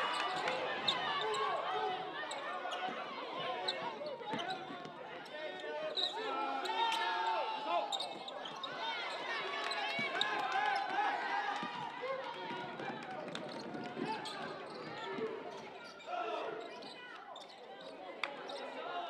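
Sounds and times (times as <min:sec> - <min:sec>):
players' voices: 0:00.0 - 0:19.0.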